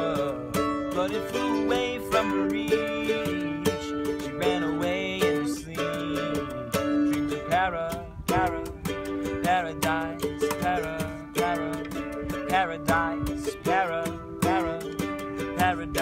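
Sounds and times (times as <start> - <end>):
cajon beat: 0.0 - 16.0
mandolin strummed: 0.0 - 16.0
person singing: 0.0 - 16.0.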